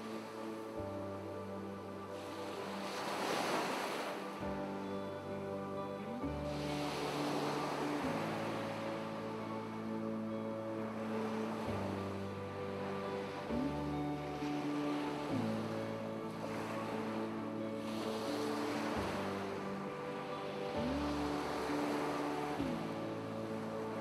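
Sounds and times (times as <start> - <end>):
ocean waves washing: 0.0 - 24.0
synth pad chords: 0.0 - 24.0.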